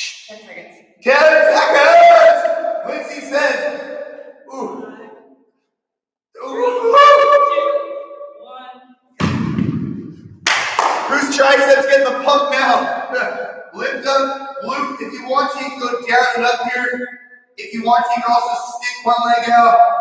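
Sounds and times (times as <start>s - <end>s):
voice making drawn-out pitched sounds: 4.5s - 5.1s, 6.4s - 8.7s.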